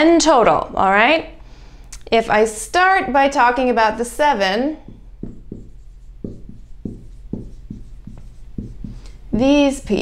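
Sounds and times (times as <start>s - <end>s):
marker writing on whiteboard: 4.8s - 9.5s.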